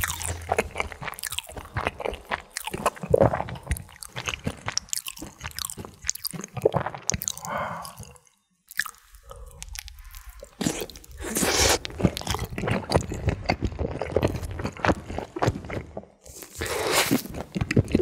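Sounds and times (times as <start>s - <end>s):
crunching and wet chewing: 0.0s - 18.0s.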